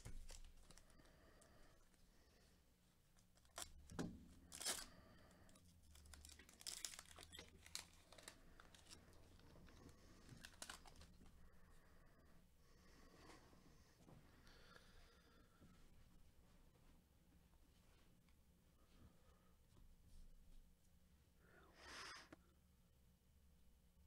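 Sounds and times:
foil card pack tearing: 4.4 - 5.0, 5.8 - 9.0, 10.3 - 11.1
wrapper crinkling: 4.4 - 11.2.

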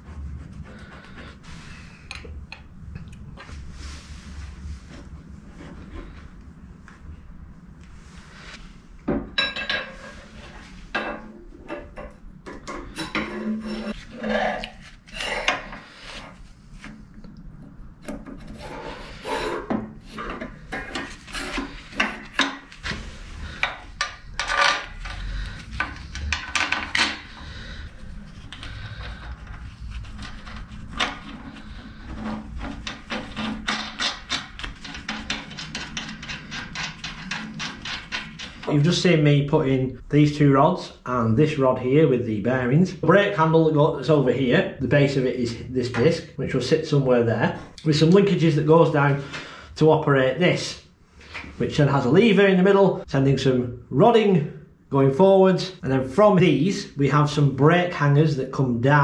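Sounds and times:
rod scraping against metal: 12.9 - 17.0, 18.0 - 38.9
metallic knocks and clicks: 32.8 - 38.7.

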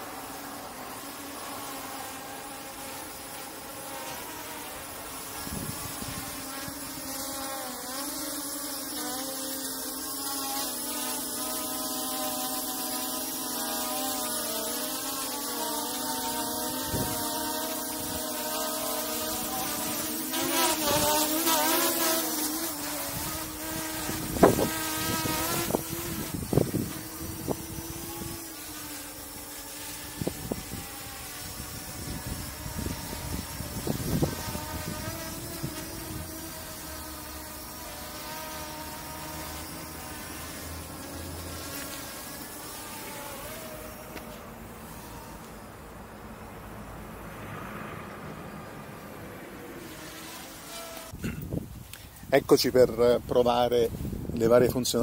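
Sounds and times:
quadcopter motors buzzing: 0.0 - 55.0.

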